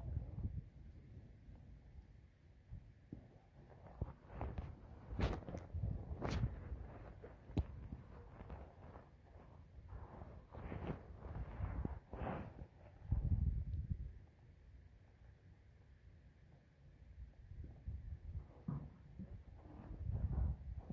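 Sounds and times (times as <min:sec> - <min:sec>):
footsteps: 0:03.7 - 0:13.3.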